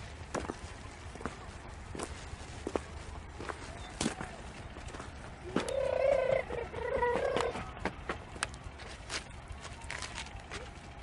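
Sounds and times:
footsteps crunching on stony track: 0:00.0 - 0:11.0
drawn-out high-pitched calls: 0:05.4 - 0:07.6.

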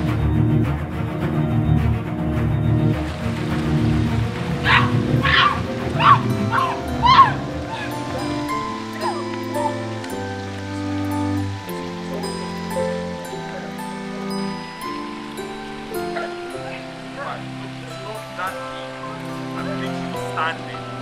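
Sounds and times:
tense film score music: 0:00.0 - 0:21.0
short high cries: 0:04.6 - 0:09.9.

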